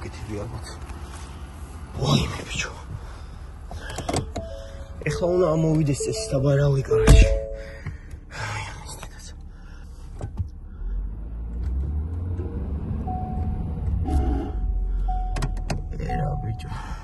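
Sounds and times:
pickup engine rumble: 0:00.0 - 0:17.0
dashboard warning chime: 0:03.8 - 0:08.1, 0:13.0 - 0:17.0.

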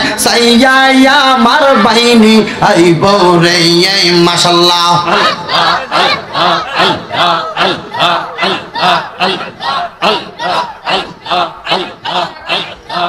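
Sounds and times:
rhythmic breathy chanting: 0:01.4 - 0:02.8, 0:04.9 - 0:13.0.

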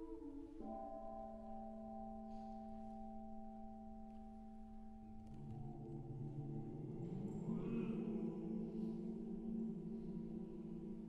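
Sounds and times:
choir singing a cappella: 0:05.7 - 0:11.0.

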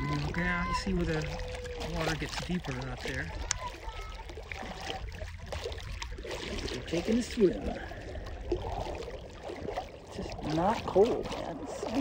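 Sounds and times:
water swishing around wading legs: 0:00.0 - 0:12.0.

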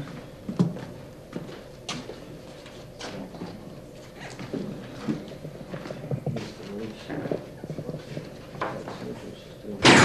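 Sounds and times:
footsteps on hard floor: 0:00.0 - 0:02.8.

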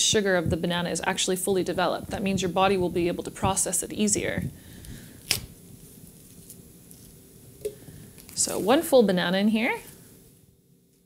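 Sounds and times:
banana peel being pulled back: 0:04.8 - 0:07.2
banana stem snapping: 0:05.2 - 0:05.5.

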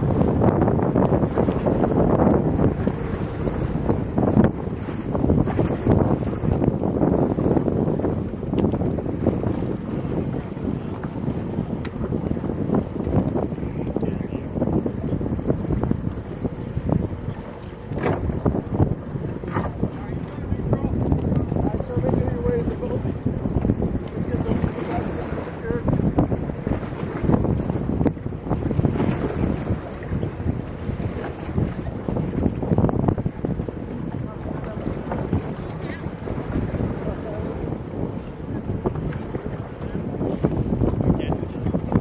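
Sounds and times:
sea water splashing against boat: 0:00.0 - 0:42.0
wind buffeting microphone: 0:00.0 - 0:42.0.

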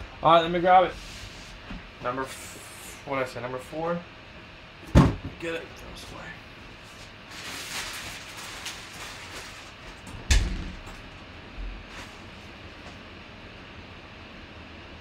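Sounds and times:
rustling and shuffling: 0:06.8 - 0:13.0.

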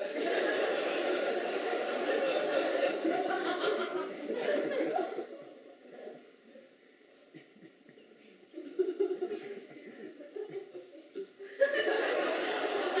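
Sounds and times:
audience laughing: 0:00.0 - 0:05.6, 0:08.6 - 0:13.0.

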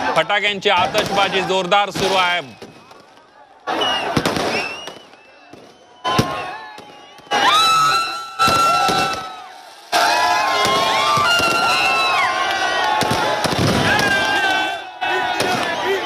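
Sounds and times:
crowd shouting and cheering: 0:00.0 - 0:16.0
firecrackers going off: 0:00.7 - 0:14.7, 0:15.3 - 0:16.0.

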